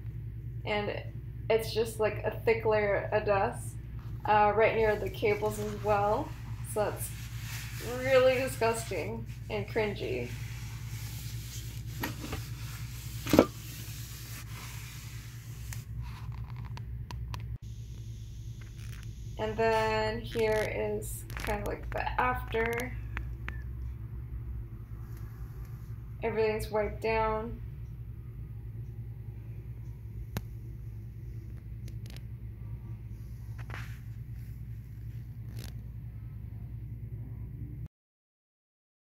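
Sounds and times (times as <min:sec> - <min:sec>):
steady low rumble: 0:00.0 - 0:37.9
short rustle: 0:04.7 - 0:15.8
phone microphone handling rumble: 0:18.6 - 0:23.3.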